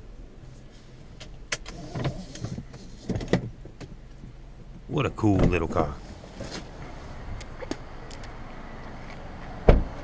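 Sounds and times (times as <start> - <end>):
car door shutting with a thud: 5.3 - 6.7, 9.6 - 10.0.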